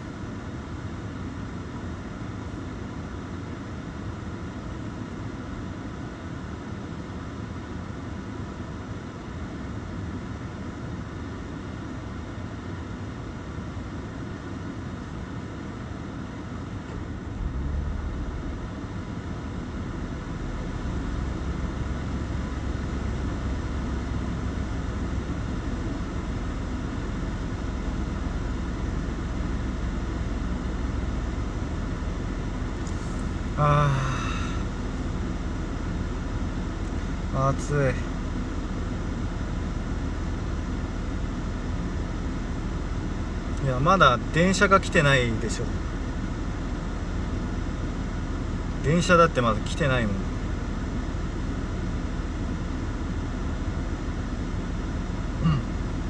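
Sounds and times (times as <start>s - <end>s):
air conditioning running: 0.0s - 56.0s
car engine idling: 12.6s - 56.0s
deep low rumble: 17.0s - 22.4s.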